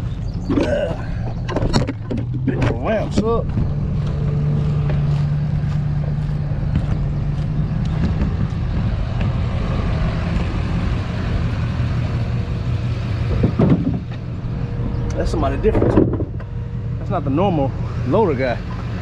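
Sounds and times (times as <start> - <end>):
steady hum: 0.0 - 19.0
vehicle engine rumbling: 0.0 - 19.0.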